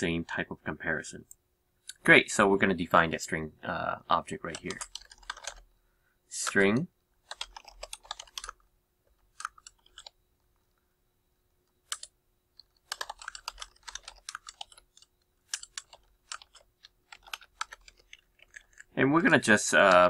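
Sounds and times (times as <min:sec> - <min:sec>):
typing on computer keyboard: 0:04.4 - 0:05.7, 0:06.4 - 0:08.6, 0:09.2 - 0:10.2, 0:11.8 - 0:20.0.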